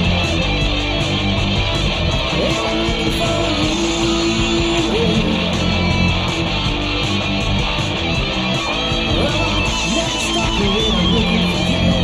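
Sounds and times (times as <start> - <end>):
electric guitar: 0.0 - 12.0
hard rock band playing: 0.0 - 12.0.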